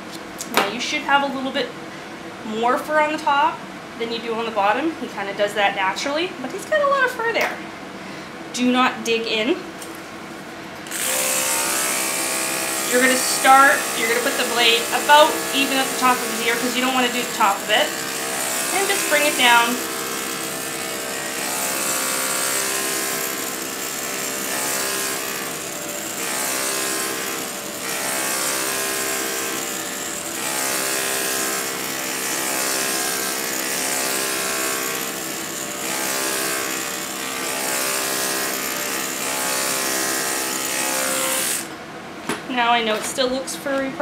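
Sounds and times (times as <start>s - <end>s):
electric clippers buzzing: 10.8s - 41.8s.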